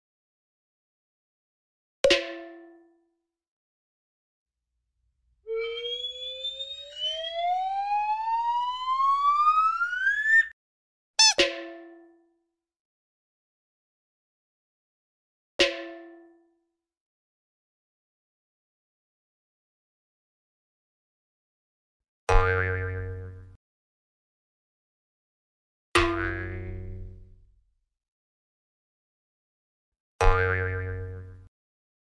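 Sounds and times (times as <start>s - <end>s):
rising whistle glide: 5.5s - 10.5s.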